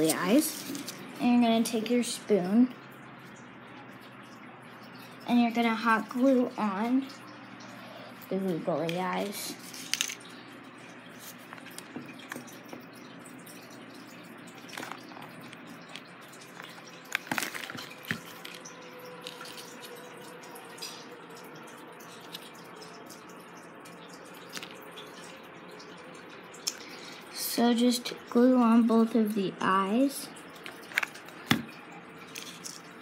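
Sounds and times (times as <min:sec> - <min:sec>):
low room hum: 0:00.0 - 0:33.0
small objects tapping and clicking: 0:09.7 - 0:10.3.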